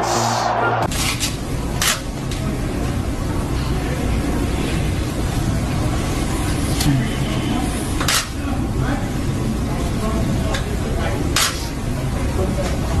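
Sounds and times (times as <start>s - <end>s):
steady low room hum: 0.0s - 13.0s.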